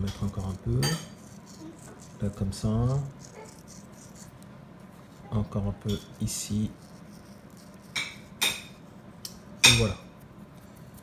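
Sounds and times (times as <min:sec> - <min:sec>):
seeds sprinkled on dough: 0:00.0 - 0:11.0.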